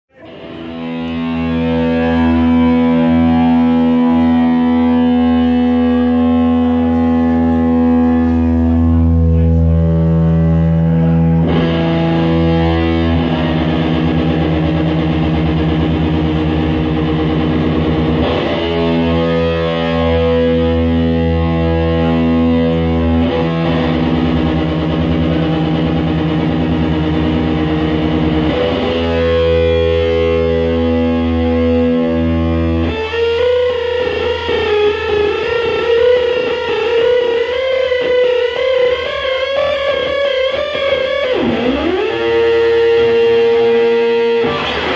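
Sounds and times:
rock band sustained chords: 0.1s - 44.9s
wavering lead guitar note: 0.1s - 44.9s.

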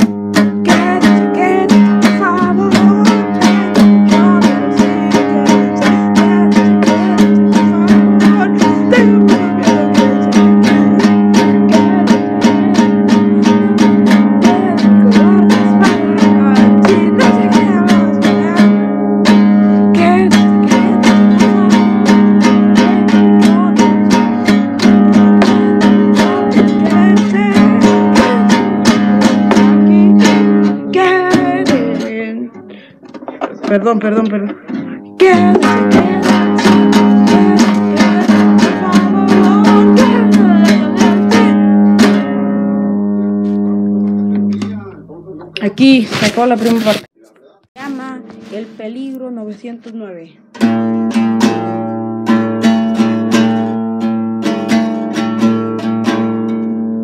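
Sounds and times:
person singing: 0.0s - 44.8s
acoustic guitar strumming: 0.0s - 47.2s, 47.8s - 57.0s.

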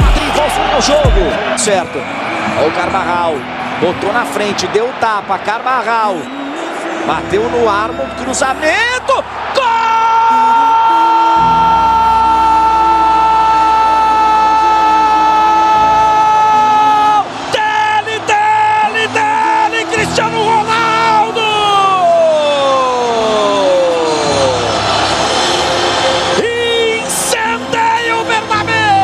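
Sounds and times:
commentator shouting: 0.0s - 2.0s, 2.6s - 24.6s, 26.4s - 29.0s
crowd cheering: 0.0s - 29.0s.

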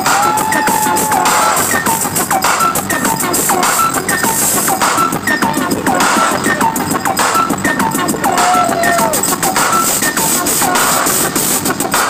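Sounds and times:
loud electronic music: 0.0s - 12.0s
sharp clicky percussion: 0.0s - 12.0s.

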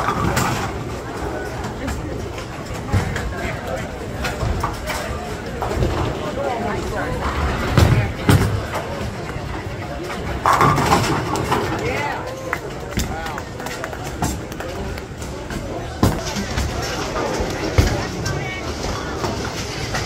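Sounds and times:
bowling balls and pins clattering: 0.0s - 20.0s
voices: 0.0s - 20.0s.

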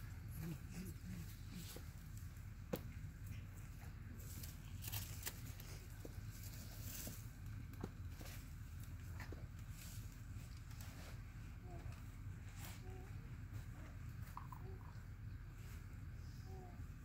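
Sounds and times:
steady low rumble: 0.0s - 17.0s.

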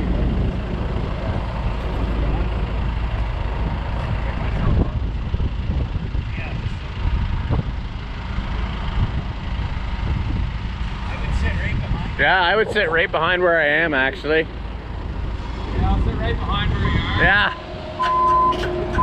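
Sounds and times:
diesel engines running: 0.0s - 19.0s.

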